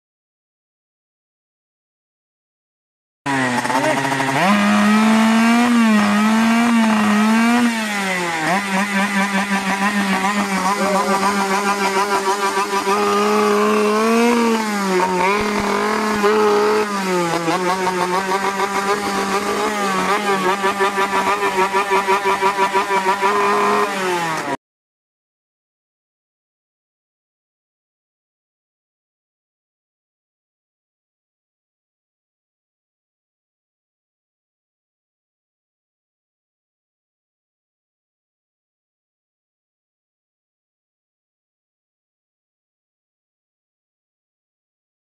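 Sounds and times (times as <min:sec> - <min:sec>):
moped engine revving: 0:03.3 - 0:24.6.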